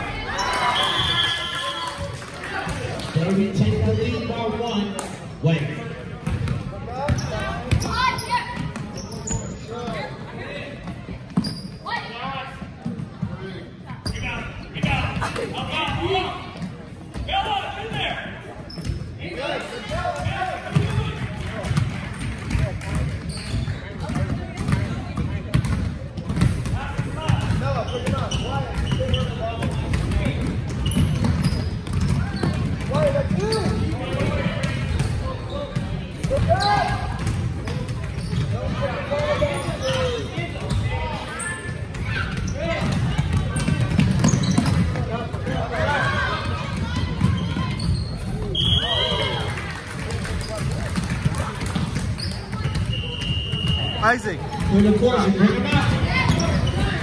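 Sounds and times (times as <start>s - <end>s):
voices in a gym: 0.0s - 57.0s.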